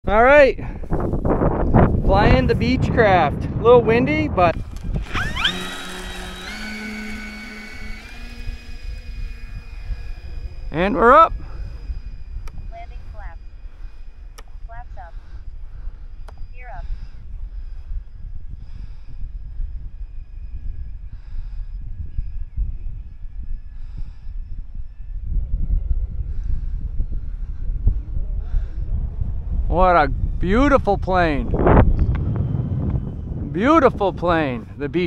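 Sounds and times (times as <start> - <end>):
wind buffeting microphone: 0.0 - 35.0
model plane electric motors whine: 4.5 - 28.8.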